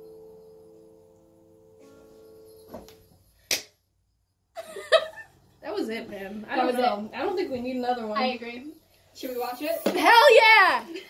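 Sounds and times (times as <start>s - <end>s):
keyboard chord: 0.0s - 3.0s
sharp hand clap: 3.5s - 3.8s.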